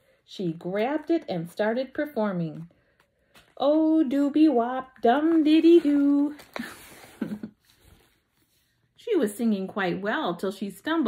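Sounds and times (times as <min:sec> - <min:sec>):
woman chuckling: 0:06.6 - 0:07.8.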